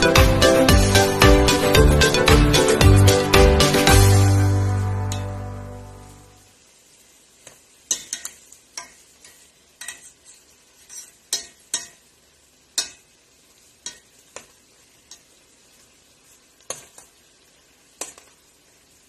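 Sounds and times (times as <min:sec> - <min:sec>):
faint sizzle: 0:00.0 - 0:19.0
metal tongs clacking against pot: 0:07.9 - 0:12.1, 0:12.8 - 0:13.1, 0:13.8 - 0:14.5, 0:15.1 - 0:15.3.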